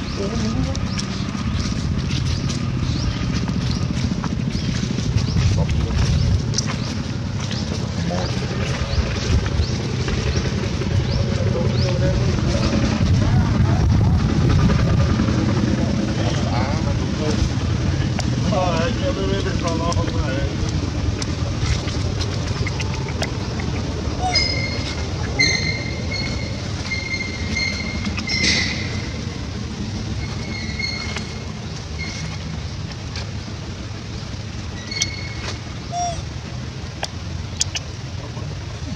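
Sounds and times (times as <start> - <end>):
low outdoor background noise: 0.0 - 38.9
high chirping tones: 23.6 - 29.2, 34.7 - 36.2.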